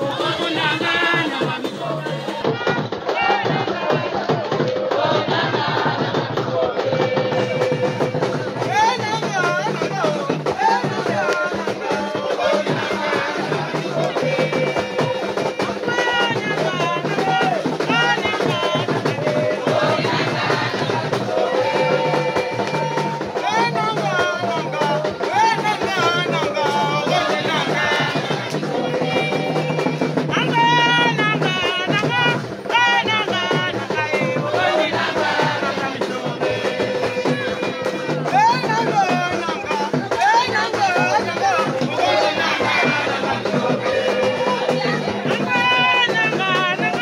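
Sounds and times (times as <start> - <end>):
drums and hand percussion: 0.0 - 47.0
voices singing: 0.0 - 47.0.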